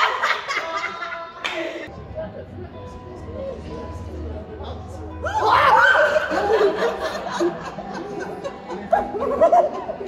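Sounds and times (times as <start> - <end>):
people laughing: 0.0 - 1.9, 5.2 - 10.0
background music: 0.0 - 10.0.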